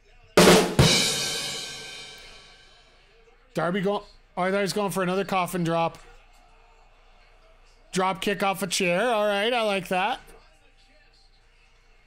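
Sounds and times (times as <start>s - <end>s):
cymbal crash ringing: 0.4s - 2.7s.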